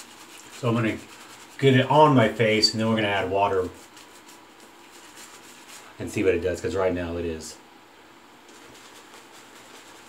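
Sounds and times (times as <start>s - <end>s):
shaving brush swishing on face: 0.0s - 6.0s, 8.5s - 10.0s.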